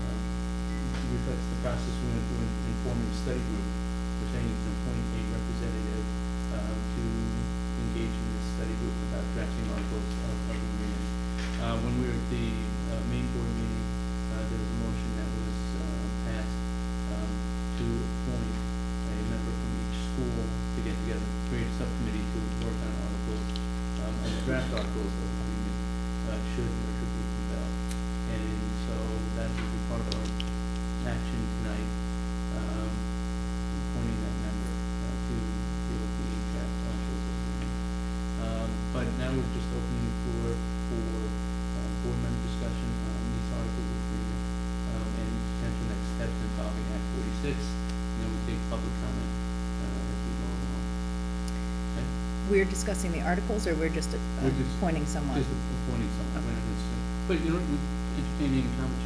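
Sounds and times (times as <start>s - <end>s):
faint low voices: 0.0s - 27.7s, 28.3s - 30.3s, 31.0s - 31.9s, 32.5s - 33.0s, 33.9s - 37.3s, 38.4s - 50.8s, 52.0s - 59.0s
electrical mains hum: 0.0s - 59.0s.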